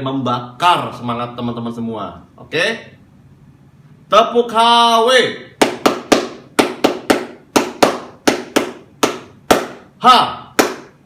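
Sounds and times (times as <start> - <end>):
person clapping rhythmically: 5.6 - 11.0.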